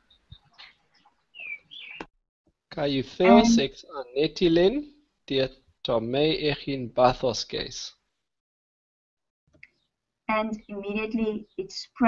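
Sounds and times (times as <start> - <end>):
bird chirping: 0.0 - 2.1.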